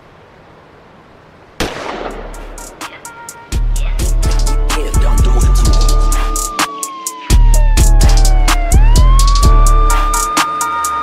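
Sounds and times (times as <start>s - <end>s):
soft steady hiss: 0.0s - 6.6s.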